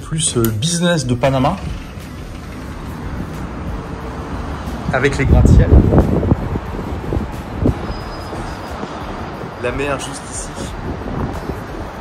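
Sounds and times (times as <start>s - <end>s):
city traffic hum: 0.0s - 12.0s.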